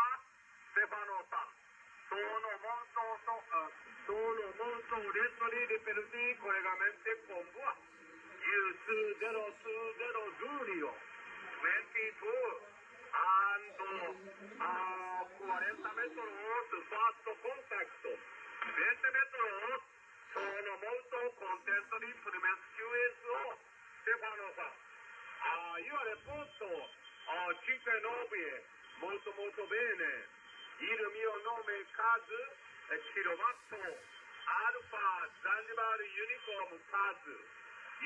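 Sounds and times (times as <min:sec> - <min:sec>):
faint radio hiss: 0:00.0 - 0:38.0
thin radio voice: 0:02.2 - 0:19.7, 0:20.3 - 0:21.7.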